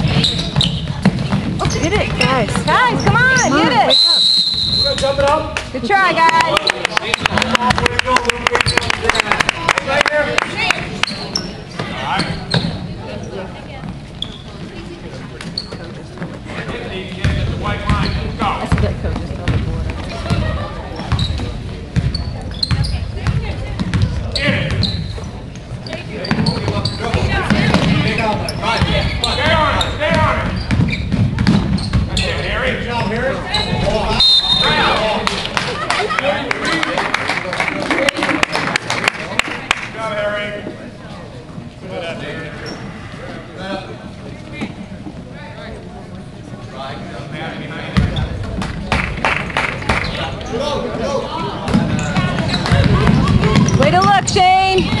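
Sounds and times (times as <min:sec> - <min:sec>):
spectators' voices: 0:00.0 - 0:30.6, 0:32.1 - 0:55.0
basketball bouncing on hardwood floor: 0:00.1 - 0:03.4, 0:30.7 - 0:32.1, 0:51.7 - 0:55.0.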